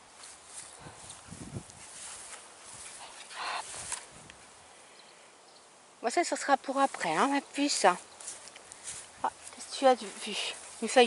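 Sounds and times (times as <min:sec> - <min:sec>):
puppy rustling through grass: 0:00.0 - 0:04.6, 0:06.4 - 0:11.0.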